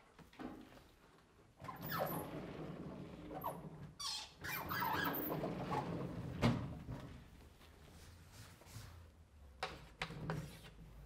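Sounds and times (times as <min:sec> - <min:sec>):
panels sliding and squeaking on rails: 0:01.6 - 0:06.2.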